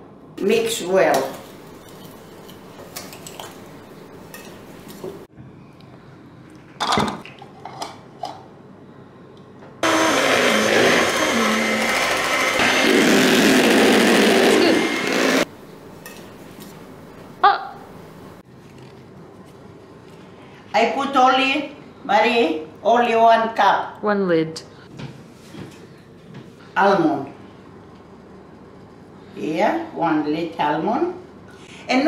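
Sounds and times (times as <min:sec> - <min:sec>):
electric hand mixer beating: 0:09.8 - 0:15.5.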